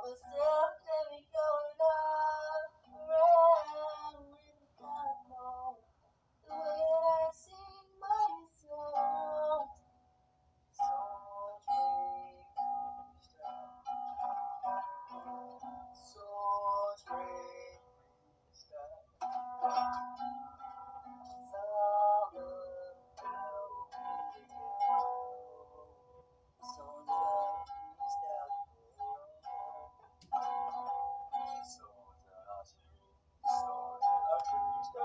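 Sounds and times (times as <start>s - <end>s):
acoustic guitar: 10.8s - 35.0s
man singing: 33.4s - 35.0s.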